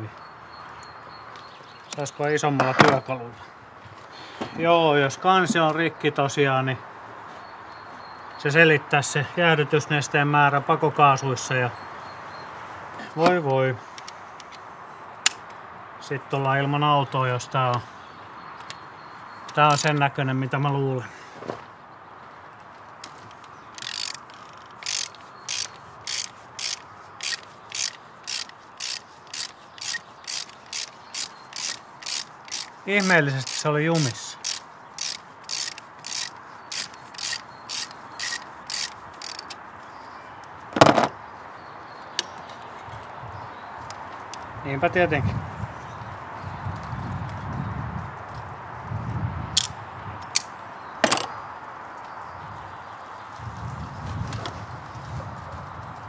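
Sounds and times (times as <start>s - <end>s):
ratchet wrench clicking: 19.7s - 20.0s, 23.7s - 39.6s.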